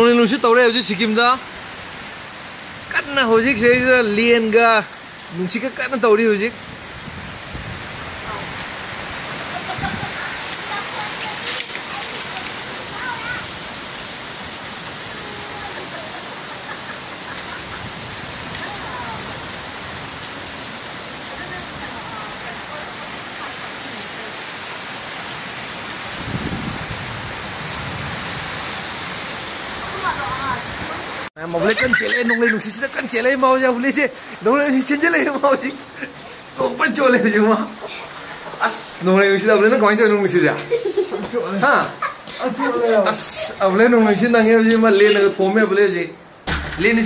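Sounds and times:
heavy rain falling: 0.0s - 47.0s.

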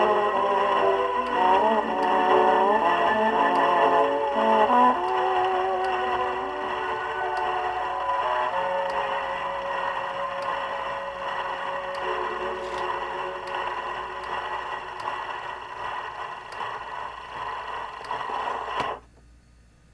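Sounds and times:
band chord from gramophone record: 0.0s - 16.3s
record surface hiss: 0.0s - 19.9s.

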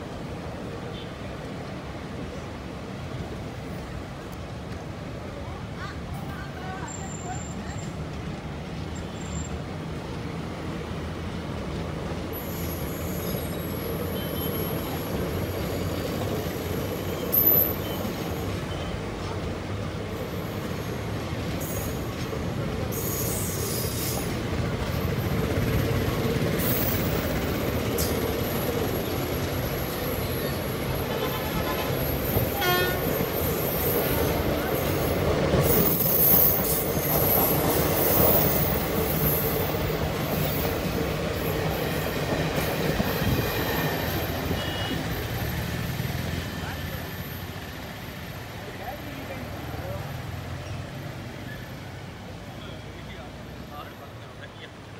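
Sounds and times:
train wheels rumbling on rails: 0.0s - 54.9s.

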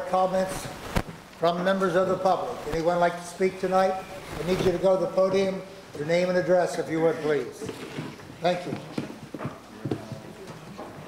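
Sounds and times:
footsteps on hard floor: 7.6s - 11.0s.

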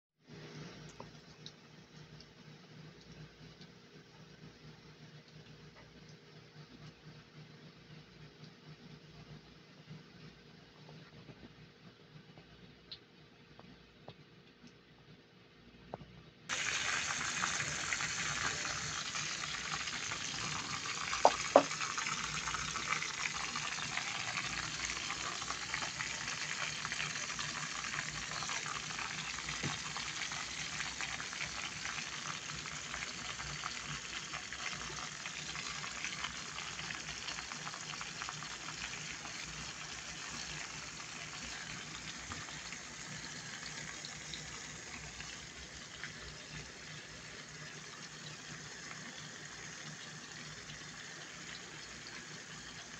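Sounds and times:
onions sizzling in hot oil: 16.5s - 52.9s.

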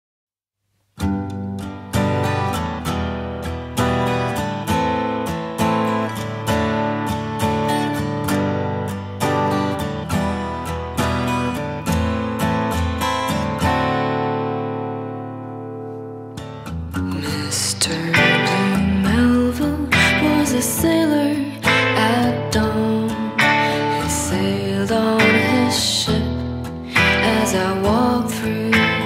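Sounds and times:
acoustic guitar strumming chords: 1.0s - 29.0s.

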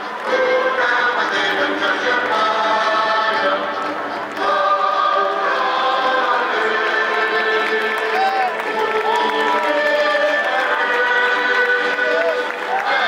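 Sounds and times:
choir singing held notes: 0.0s - 13.0s.

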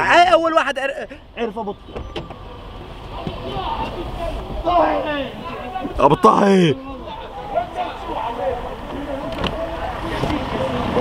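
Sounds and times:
low rumble of traffic: 0.0s - 11.0s
people talking in background: 0.8s - 11.0s.

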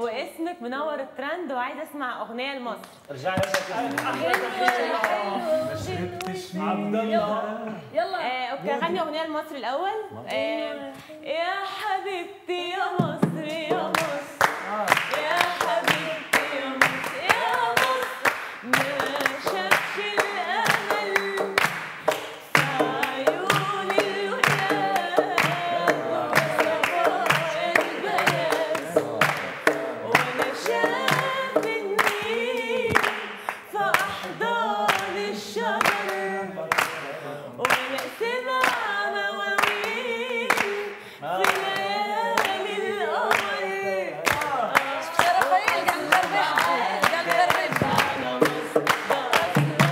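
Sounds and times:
people clapping in time: 3.4s - 5.4s, 13.0s - 49.9s
woman singing unaccompanied: 4.0s - 21.8s, 22.5s - 36.4s, 37.6s - 49.9s.

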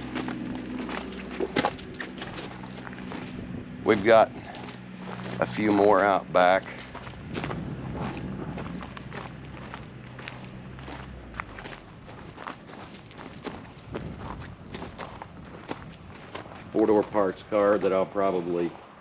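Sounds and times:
footsteps on gravel: 0.0s - 19.0s
low background hum: 0.0s - 19.0s.

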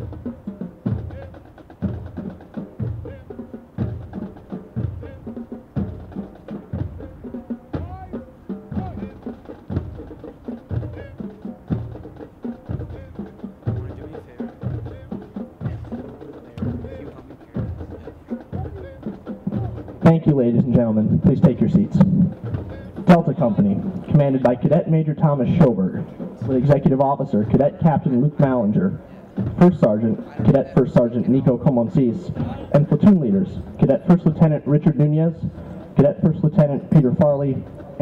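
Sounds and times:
bass drum beating: 0.0s - 25.0s.

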